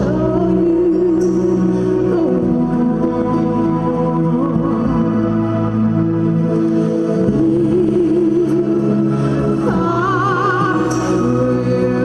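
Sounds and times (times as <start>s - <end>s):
karaoke backing track: 0.0s - 12.0s
woman singing with vibrato: 0.0s - 12.0s.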